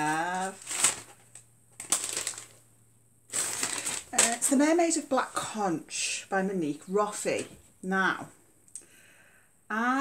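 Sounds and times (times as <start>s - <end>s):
paper rustling and tearing: 0.0s - 2.6s, 3.3s - 4.7s
paper wrapping crackling: 0.0s - 2.7s, 3.3s - 5.0s.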